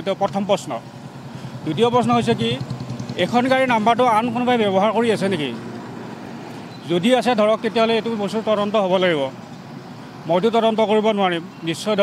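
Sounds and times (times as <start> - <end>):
road traffic noise: 0.0 - 12.0
man speaking: 1.6 - 2.6, 3.2 - 5.6, 6.9 - 9.4, 10.3 - 12.0.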